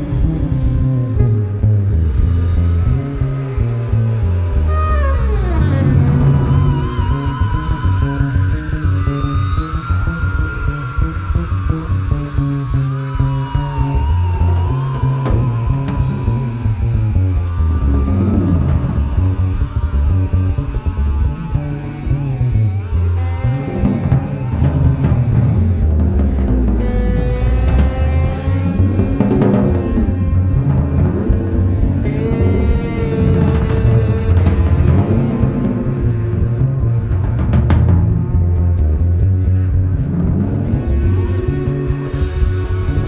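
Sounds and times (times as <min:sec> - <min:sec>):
deep bass notes: 0:00.0 - 0:43.0
gliding guitar tones: 0:00.0 - 0:43.0
jazz ensemble improvising: 0:00.0 - 0:43.0.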